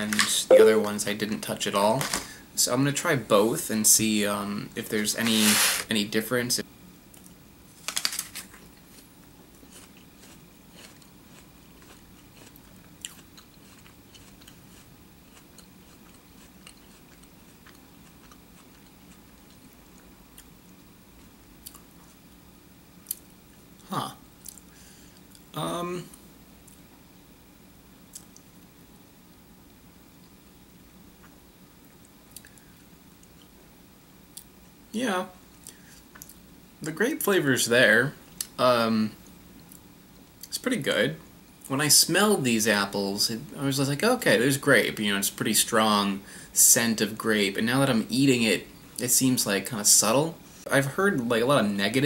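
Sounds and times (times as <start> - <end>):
person chewing crisp apple: 8.8 - 20.5, 21.2 - 22.2.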